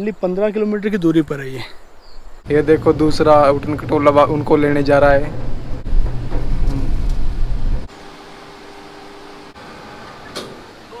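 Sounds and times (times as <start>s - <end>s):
cable trolley rumble: 2.4s - 7.9s.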